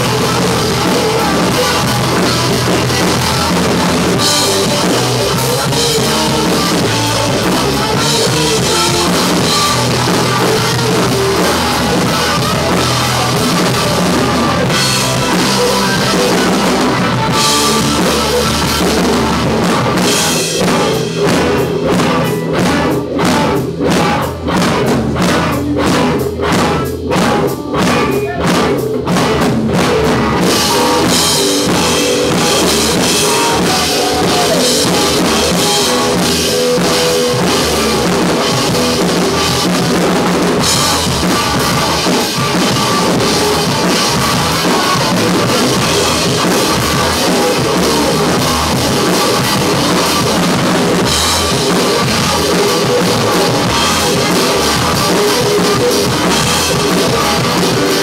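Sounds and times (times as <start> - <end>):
band accented hits: 0.0 - 58.0
rock band playing loudly: 0.0 - 58.0.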